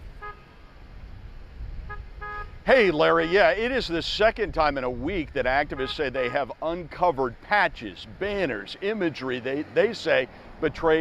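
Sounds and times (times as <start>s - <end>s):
low traffic rumble: 0.0s - 11.0s
car horn toots: 1.9s - 2.6s, 5.6s - 6.5s.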